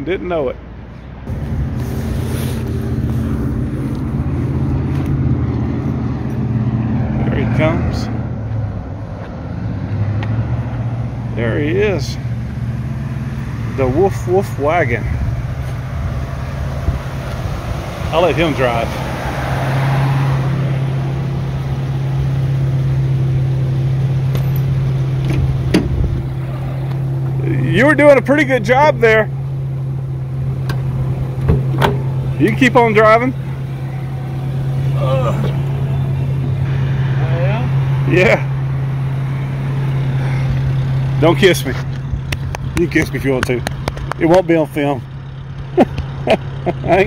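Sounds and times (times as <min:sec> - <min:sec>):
outdoor traffic noise: 0:00.0 - 0:47.0
vehicle engine humming: 0:00.0 - 0:47.0
car door opening click: 0:24.3 - 0:26.0, 0:30.6 - 0:32.1
car door latch click: 0:25.2 - 0:26.0, 0:30.6 - 0:32.1.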